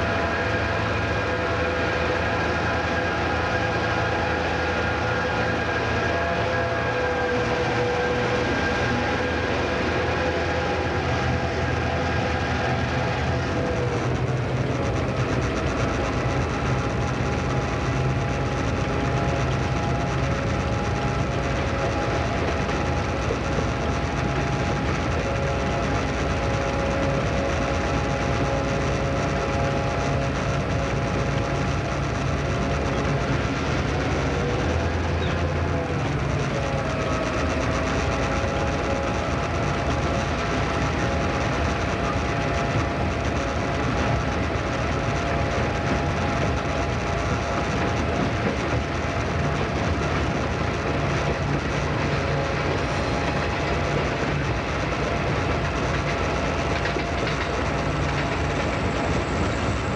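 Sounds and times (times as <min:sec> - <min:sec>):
diesel locomotive engine drone: 0:00.0 - 0:59.9
train wheels over track: 0:00.0 - 0:59.9.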